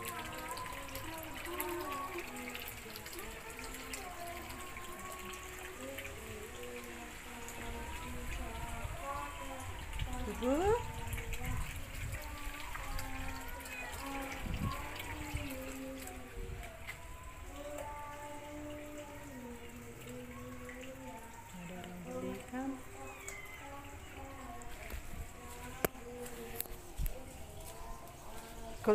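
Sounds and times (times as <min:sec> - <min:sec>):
distant person singing: 0:00.0 - 0:28.9.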